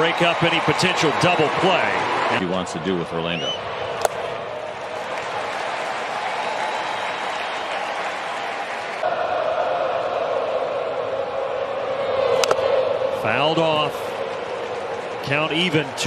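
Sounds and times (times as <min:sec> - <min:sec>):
bat cracking ball: 0:04.0 - 0:04.4, 0:12.4 - 0:12.7.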